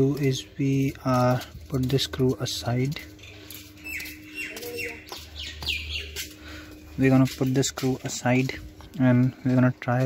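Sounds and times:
birds chirping: 0.0s - 8.5s.

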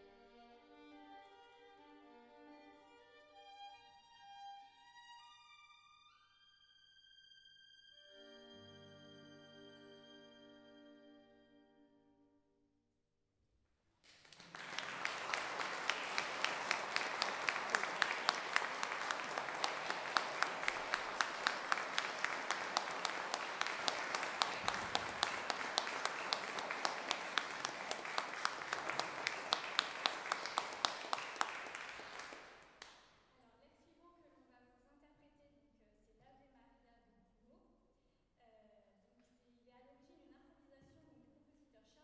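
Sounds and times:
audience applauding: 14.1s - 33.0s.

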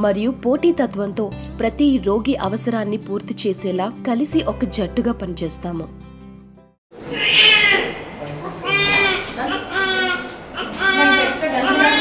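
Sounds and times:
newborn baby crying: 7.1s - 12.0s.

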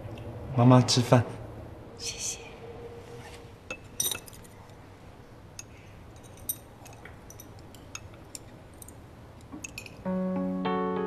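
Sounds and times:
chopsticks clinking on porcelain bowls: 5.6s - 10.0s.

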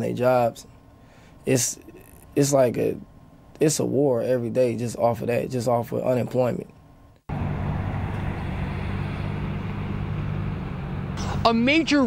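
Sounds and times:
low drone of city noise: 0.0s - 12.0s.

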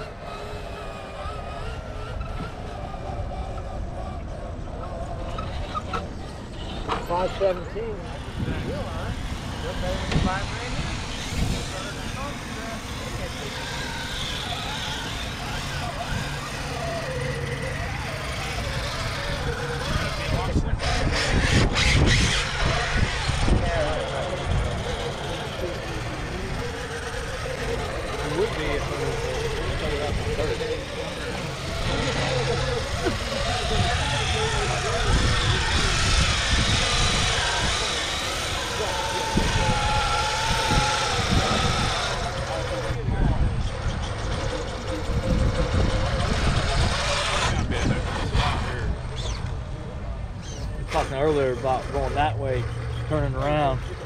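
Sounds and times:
people talking outdoors: 0.0s - 54.0s.

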